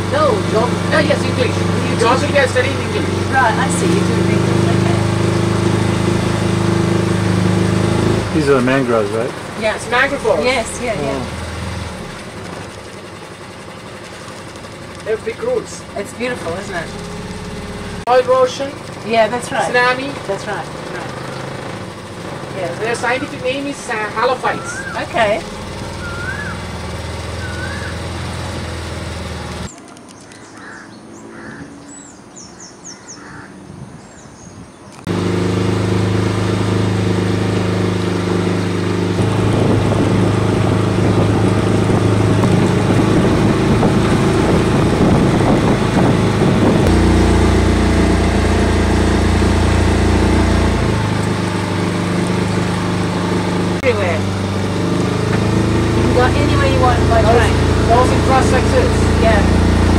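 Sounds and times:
outboard motor running: 0:00.0 - 0:31.7, 0:35.0 - 0:59.9.

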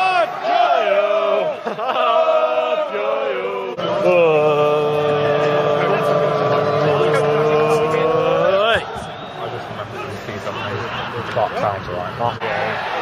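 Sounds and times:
football crowd chanting: 0:00.0 - 0:11.2.

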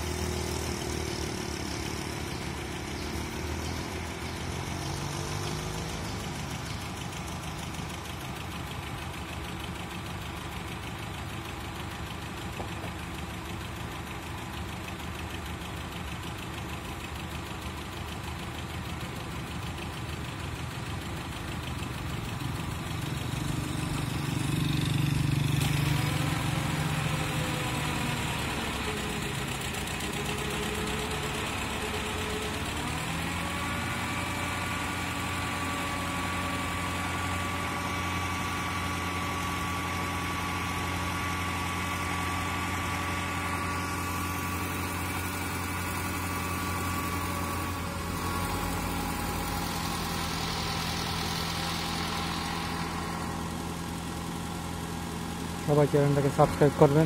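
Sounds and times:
truck engine running: 0:00.0 - 0:57.0
rising whine: 0:42.9 - 0:57.0.

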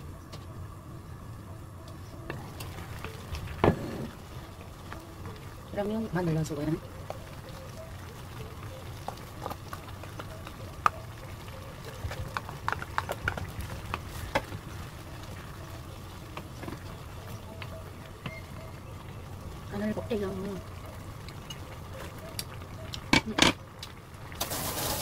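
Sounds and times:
wooden spoon stirring stew: 0:02.3 - 0:18.4.

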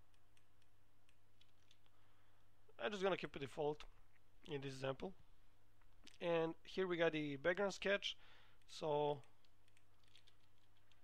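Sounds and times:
computer keyboard clicks: 0:08.6 - 0:11.0.

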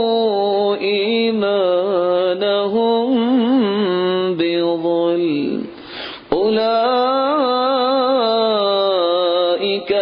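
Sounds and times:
man chanting melodically: 0:00.0 - 0:10.0
man drawing a breath: 0:05.8 - 0:06.3.

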